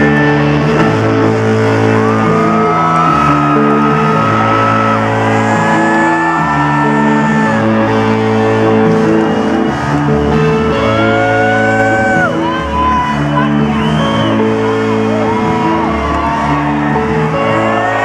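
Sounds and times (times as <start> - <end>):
electric guitar bending notes: 0.0 - 18.0
sustained synthesizer chords: 0.0 - 18.0.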